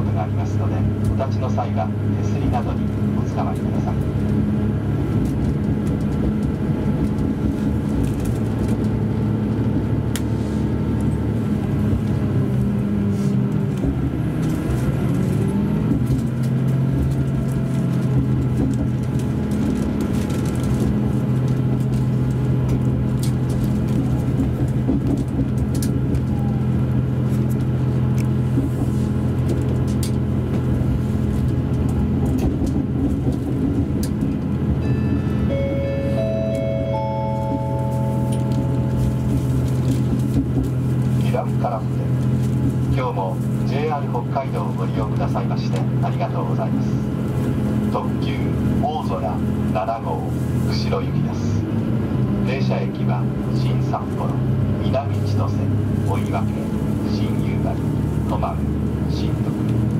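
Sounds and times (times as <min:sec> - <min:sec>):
diesel railcar engine running: 0:00.0 - 0:59.9
hum of running train: 0:00.0 - 0:59.9
announcement chime: 0:34.8 - 0:39.6.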